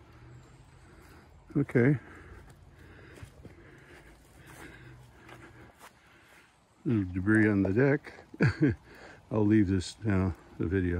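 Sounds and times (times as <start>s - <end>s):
footsteps on wet ground: 0.0s - 8.0s.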